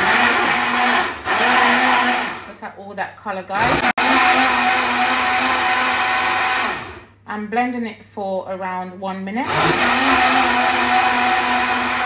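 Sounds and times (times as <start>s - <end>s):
blender running: 0.0s - 2.6s, 3.5s - 7.2s, 9.4s - 12.0s.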